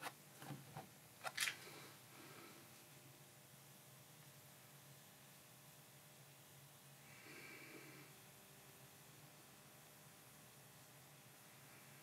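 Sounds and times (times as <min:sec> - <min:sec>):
faint room hiss: 0:00.0 - 0:12.0.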